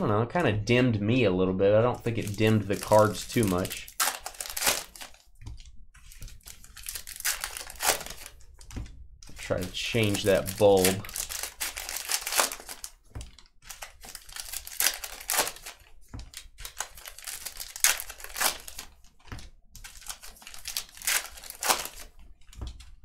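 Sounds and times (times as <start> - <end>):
wrappers torn and crinkled: 2.1 - 5.3, 6.0 - 8.5, 9.4 - 19.0, 19.8 - 22.6.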